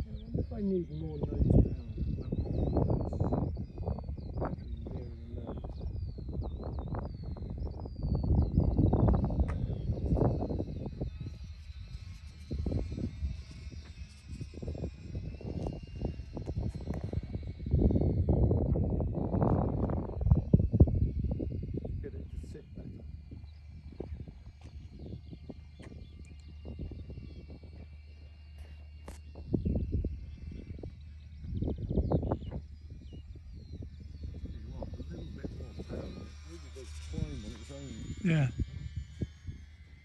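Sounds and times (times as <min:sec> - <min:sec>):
model plane motor whine: 0:00.0 - 0:40.0
small birds chirping: 0:00.0 - 0:40.0
wind buffeting microphone: 0:00.0 - 0:40.0.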